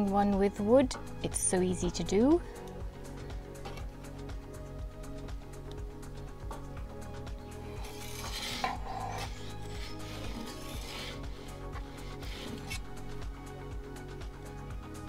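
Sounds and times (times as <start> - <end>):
metal peel scraping stone oven floor: 7.6 - 13.3.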